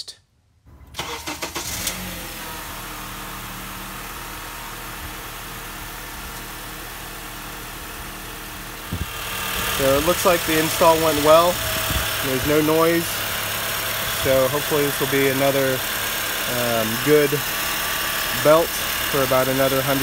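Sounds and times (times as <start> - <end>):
car engine starting and idling: 0.7 - 20.0.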